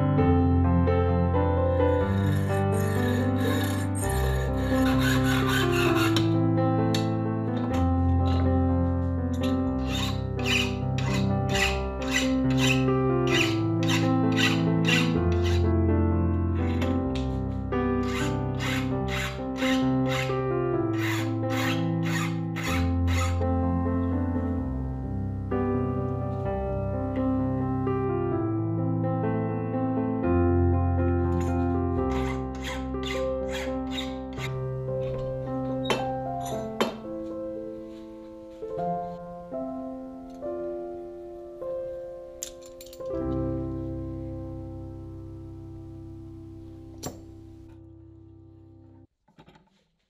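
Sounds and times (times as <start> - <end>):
piano music: 0.0 - 49.1
file rasping on metal: 2.0 - 7.1, 8.2 - 8.5, 9.8 - 15.6, 18.0 - 23.4, 32.1 - 34.6
hacksaw cutting metal rod: 2.0 - 8.5, 9.4 - 15.6, 16.6 - 17.3, 18.0 - 23.4, 32.1 - 34.6.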